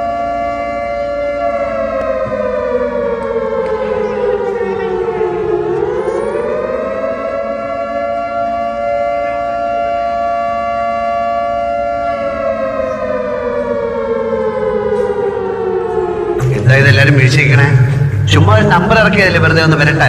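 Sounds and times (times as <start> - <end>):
siren wailing: 0.0 - 20.0.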